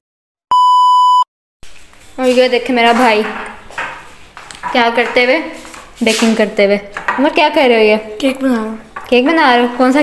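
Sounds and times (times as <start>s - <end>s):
high electronic beep: 0.5s - 1.3s.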